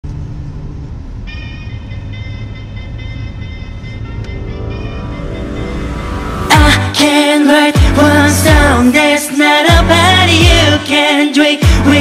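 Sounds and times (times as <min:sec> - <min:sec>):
vehicle rumble: 0:00.0 - 0:07.1
high steady tones: 0:01.2 - 0:08.8.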